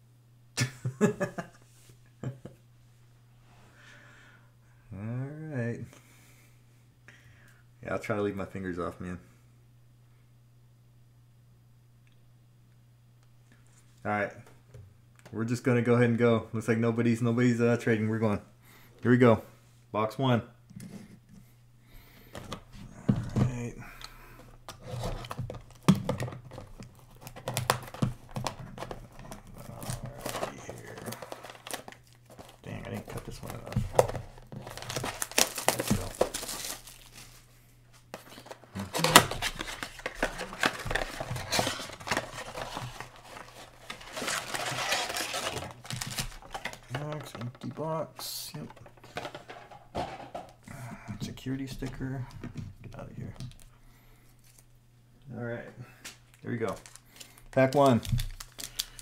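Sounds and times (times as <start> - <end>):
plastic wrapping crinkling and tearing: 24.8 - 37.5, 38.2 - 47.4, 56.6 - 59.0.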